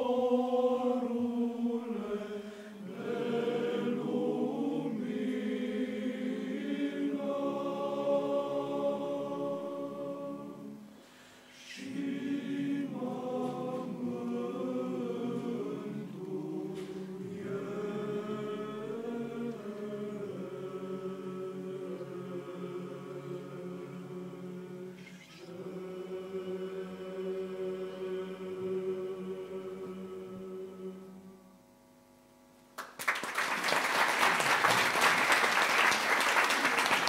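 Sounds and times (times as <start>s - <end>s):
men's choir singing a cappella: 0.0s - 10.9s, 11.6s - 31.2s.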